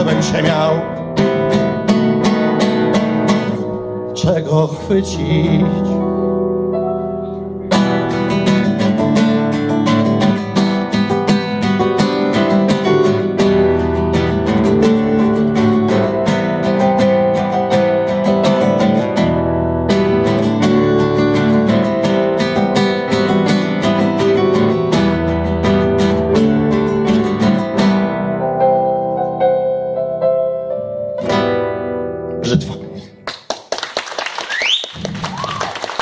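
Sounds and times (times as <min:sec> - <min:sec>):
acoustic guitar strumming chords: 0:00.0 - 0:30.4, 0:31.1 - 0:33.2
keyboard accompaniment: 0:00.0 - 0:33.2
audience applause: 0:33.2 - 0:36.0
rising whistle: 0:34.5 - 0:35.8.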